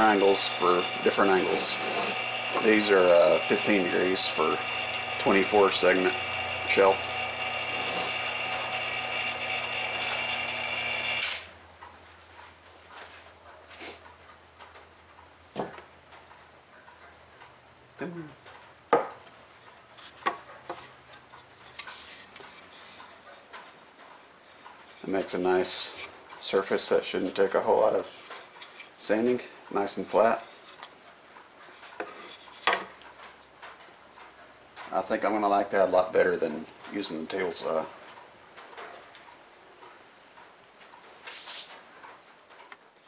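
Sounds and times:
faint rubbing: 0.2 - 4.6, 41.2 - 41.8
wooden knock on table: 19.0 - 19.2.

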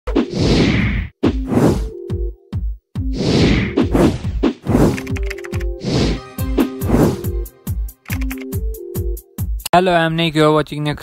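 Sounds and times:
whoosh with hit and thud: 3.1 - 5.0.

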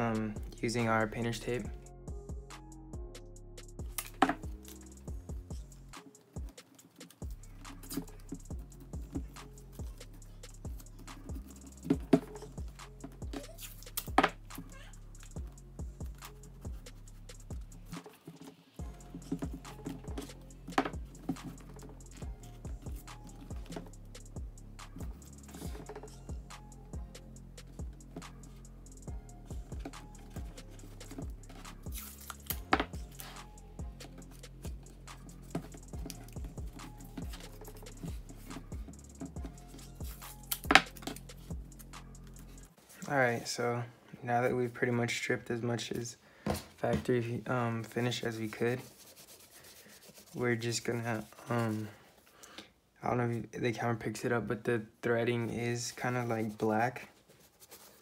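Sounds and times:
background music with bass line: 0.0 - 6.6, 7.2 - 18.0, 18.8 - 42.7
tape ripping from roll: 31.8 - 33.4.

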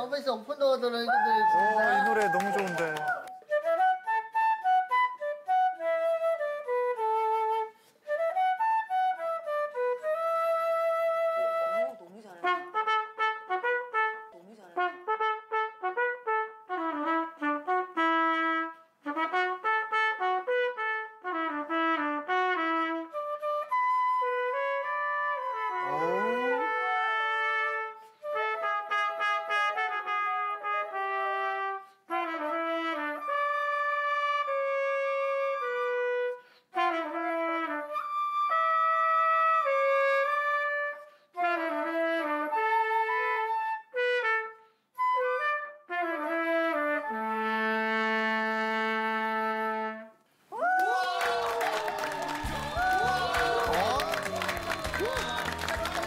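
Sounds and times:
trumpet playing slow melody: 9.5 - 50.2.

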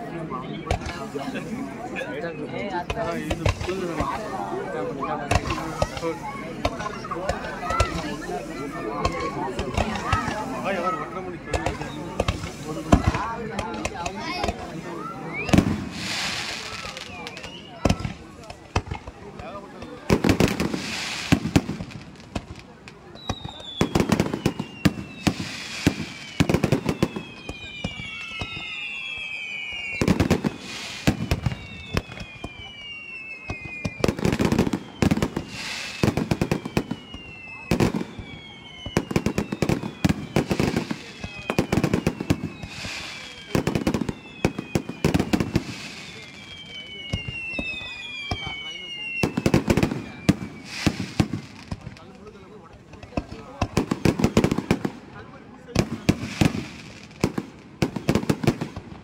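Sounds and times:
falling firework whistles: 0.0 - 59.0
fireworks bangs and crackling: 0.0 - 59.0.

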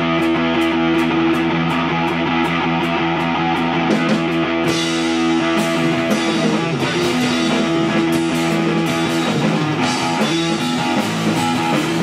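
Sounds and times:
bass guitar: 0.0 - 12.0
drums: 0.0 - 12.0
electric guitar sustained chords: 0.0 - 12.0.

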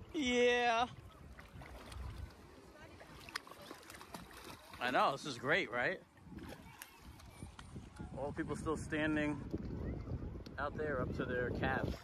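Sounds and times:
wind buffeting microphone: 0.0 - 3.2, 6.1 - 12.0
shallow water moving: 0.0 - 10.4, 11.2 - 12.0.

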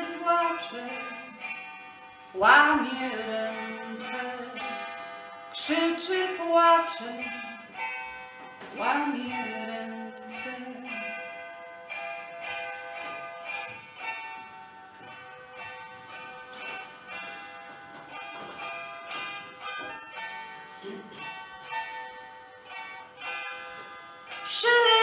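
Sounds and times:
plucked zither: 0.0 - 25.0.

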